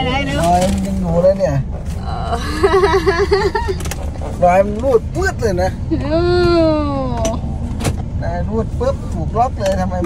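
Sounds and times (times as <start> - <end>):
car engine and air conditioning hum: 0.0 - 10.0
man talking: 4.4 - 5.8, 8.2 - 10.0.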